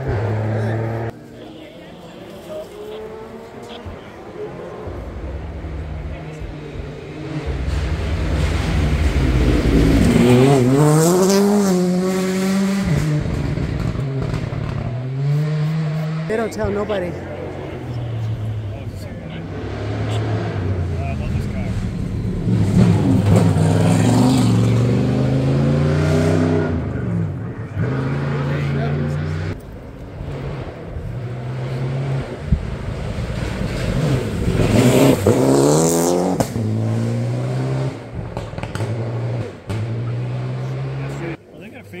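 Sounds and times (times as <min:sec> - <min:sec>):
rally car engine revving: 0:00.0 - 0:41.4.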